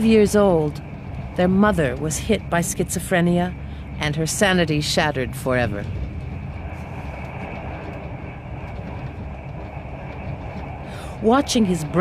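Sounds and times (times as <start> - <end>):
train running rumble: 0.0 - 12.0.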